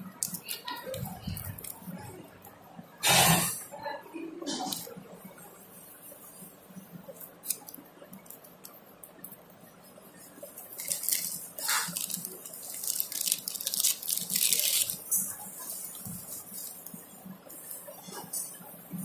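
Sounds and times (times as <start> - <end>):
plastic packet crinkling: 0.2 - 2.0, 10.4 - 17.0.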